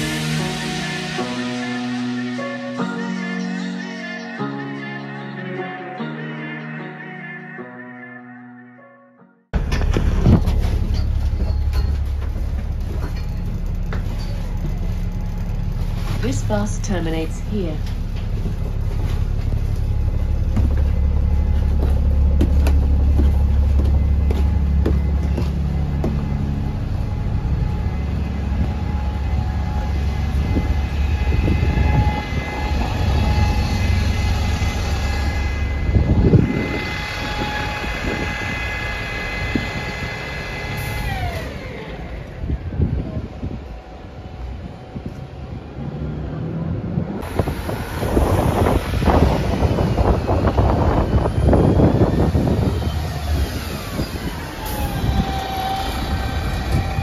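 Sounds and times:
bus station vehicle noise: 9.5 - 57.0
high steady whine: 9.6 - 46.0, 46.6 - 57.0
bus diesel engine idling: 9.6 - 57.0.

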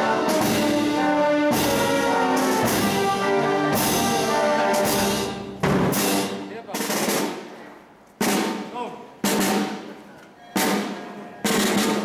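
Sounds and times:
snare and bass drum marching beat: 0.0 - 7.6, 8.2 - 12.0.

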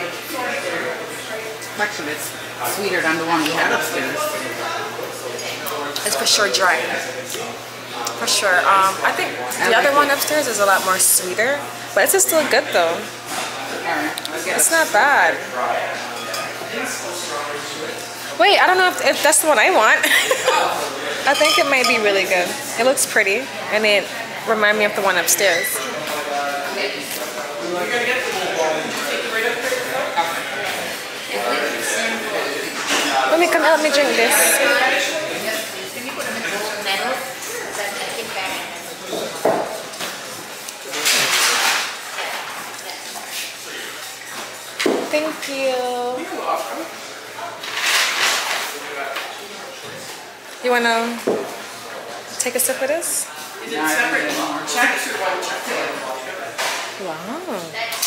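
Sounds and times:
indistinct voices: 57.0 - 58.0.

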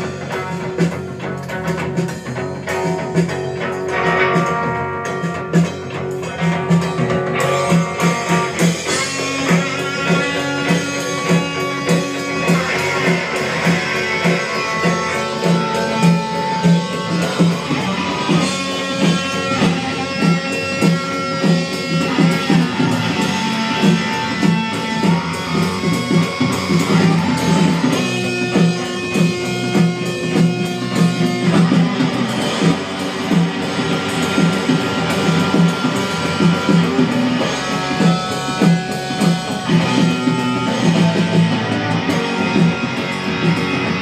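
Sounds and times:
garage rock band playing live: 0.0 - 44.0.

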